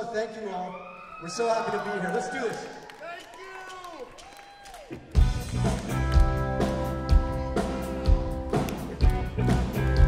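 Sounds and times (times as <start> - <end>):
live rock band playing: 5.1 - 10.0.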